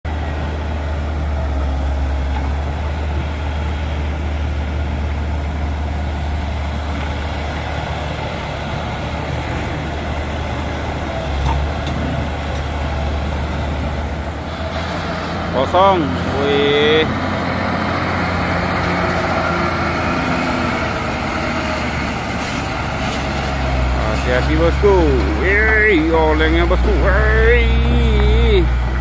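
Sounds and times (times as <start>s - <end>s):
excavator diesel engine drone: 0.1s - 29.0s.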